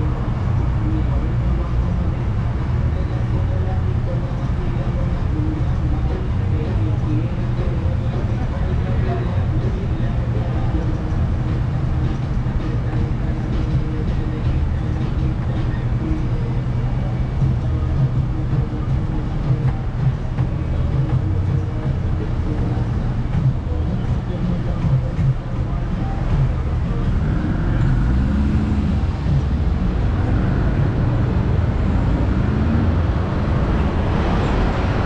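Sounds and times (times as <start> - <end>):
bus engine rumbling: 0.0 - 35.0
city traffic: 0.0 - 35.0.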